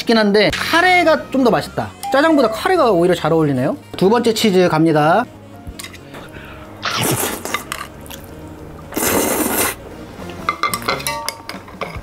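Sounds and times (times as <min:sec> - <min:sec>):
person slurping noodles: 0:06.8 - 0:08.3, 0:08.9 - 0:09.8.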